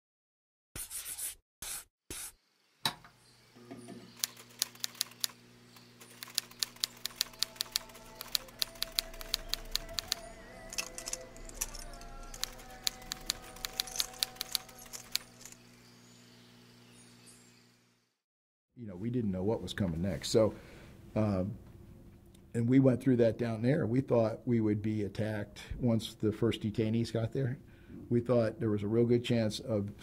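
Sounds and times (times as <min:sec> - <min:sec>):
typewriter keys clacking: 0:04.2 - 0:05.4, 0:06.0 - 0:15.6
low music drone: 0:07.2 - 0:15.6.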